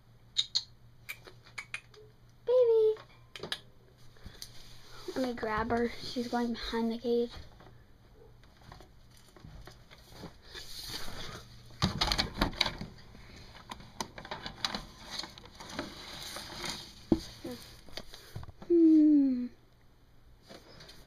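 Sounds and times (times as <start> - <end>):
rustling and scraping: 4.0 - 18.7, 20.4 - 21.0.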